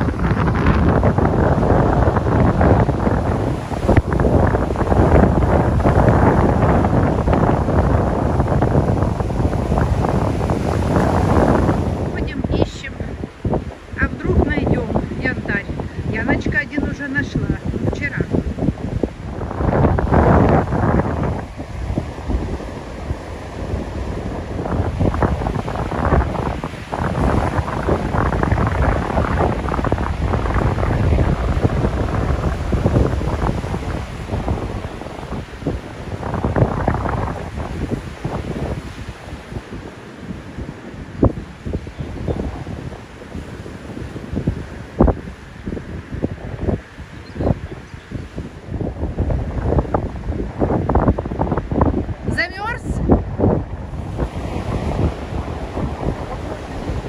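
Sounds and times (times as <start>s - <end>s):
surf breaking on shore: 0.0s - 57.0s
wind buffeting microphone: 0.0s - 57.0s.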